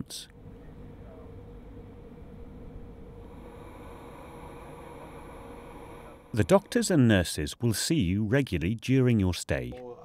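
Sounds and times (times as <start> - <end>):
low hum: 0.3 - 7.6.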